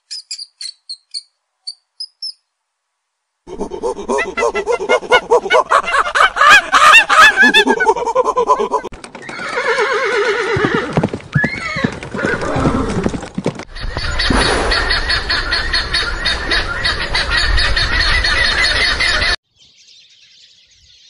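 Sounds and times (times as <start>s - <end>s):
monkey calling: 3.5s - 8.9s.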